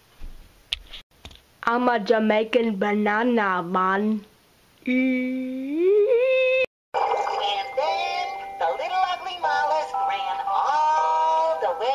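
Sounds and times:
cartoon soundtrack music: 0:07.0 - 0:11.5.

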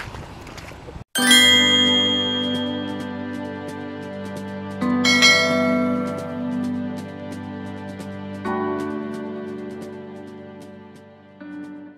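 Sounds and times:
bell-like chime ringing: 0:01.2 - 0:03.4, 0:05.0 - 0:06.6.

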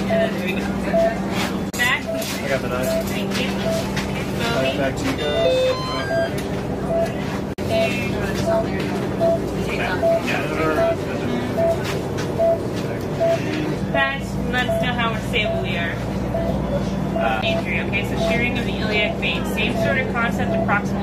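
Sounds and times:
patient monitor beeping: 0:00.0 - 0:21.0.

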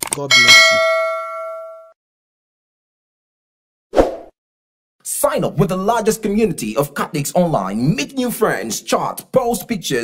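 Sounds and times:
bell-like ding: 0:00.3 - 0:02.0.

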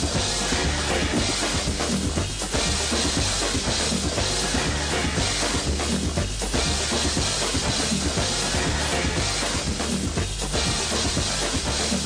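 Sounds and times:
music with drum kit beat: 0:00.0 - 0:12.0.

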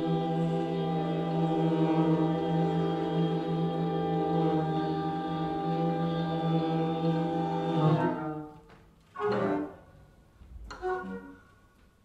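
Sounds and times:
orchestra chords: 0:00.0 - 0:11.7.

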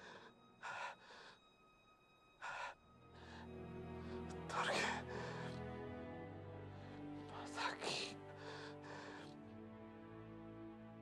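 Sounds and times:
man gasping for breath: 0:00.0 - 0:01.4
soft film score: 0:00.0 - 0:11.0.

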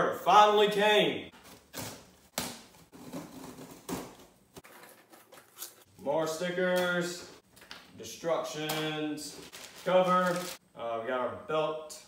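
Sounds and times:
packing tape ripping: 0:09.4 - 0:10.6.

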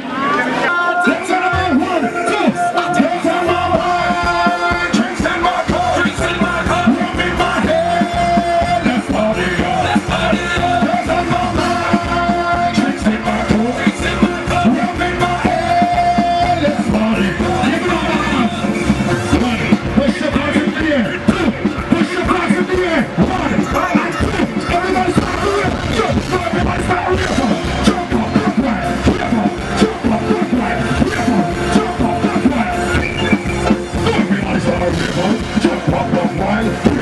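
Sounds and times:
band playing a steady beat: 0:00.1 - 0:37.0
man singing into microphone: 0:00.5 - 0:37.0.

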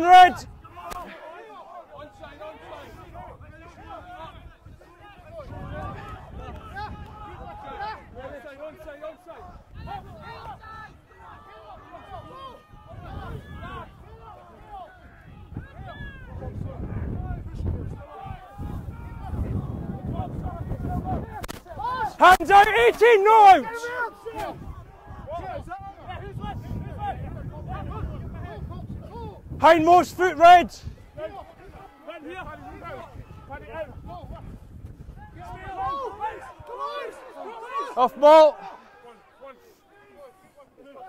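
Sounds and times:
distant players shouting: 0:00.0 - 0:41.0.

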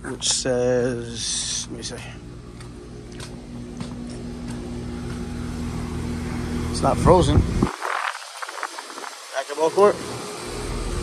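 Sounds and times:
air conditioner compressor and fan hum: 0:00.0 - 0:11.0
light footsteps on stone: 0:02.5 - 0:05.3.

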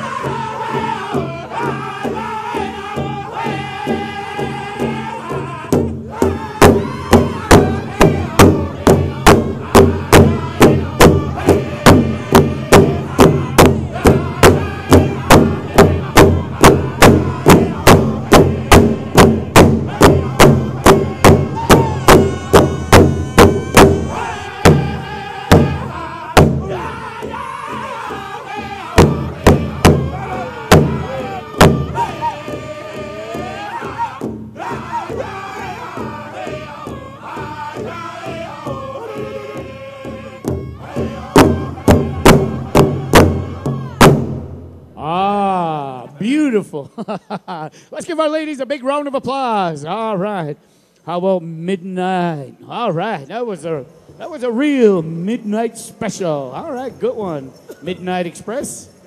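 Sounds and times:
group singing high-pitched song: 0:00.0 - 0:44.3
large drum beaten steadily: 0:00.0 - 0:45.8.

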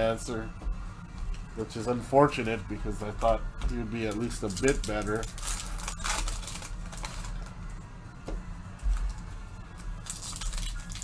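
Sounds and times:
low hum or quiet music: 0:00.0 - 0:11.0
foil wrapper crinkling: 0:04.4 - 0:07.5, 0:10.0 - 0:11.0.

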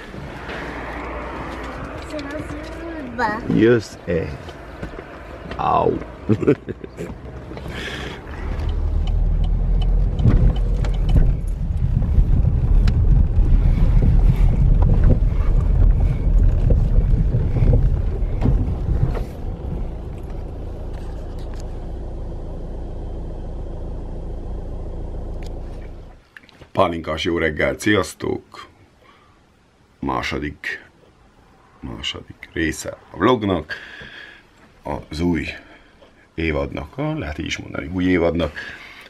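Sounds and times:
car engine rumble from cabin: 0:00.0 - 0:26.2.

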